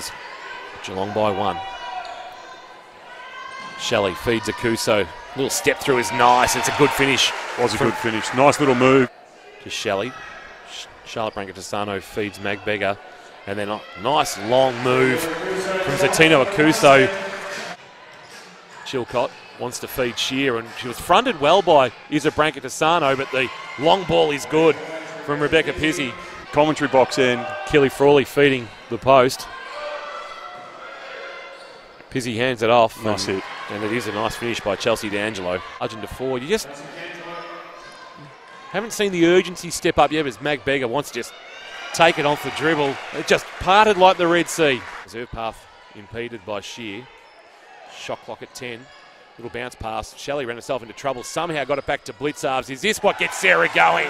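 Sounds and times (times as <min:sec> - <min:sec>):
arena background noise: 0:00.0 - 0:54.0
shoes squeaking on court: 0:31.4 - 0:32.1.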